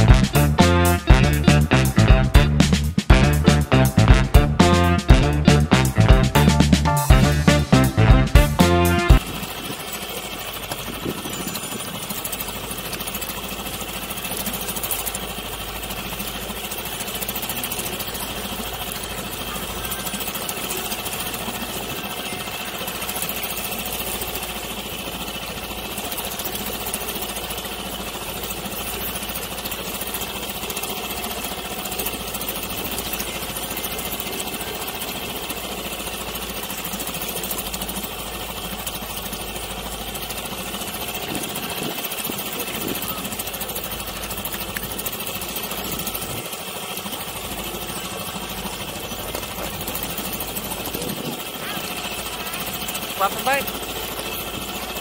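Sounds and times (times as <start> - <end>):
outboard motor running: 0.0 - 55.0.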